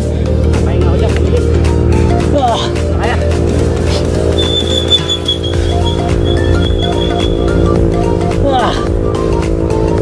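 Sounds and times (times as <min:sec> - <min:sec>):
low drone: 0:00.0 - 0:10.0
short stepping melody: 0:03.9 - 0:08.0
long high held note: 0:04.3 - 0:08.2.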